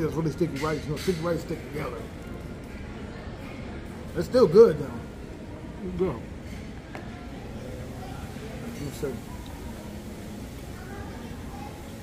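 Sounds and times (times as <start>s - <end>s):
food court murmur: 0.0s - 12.0s.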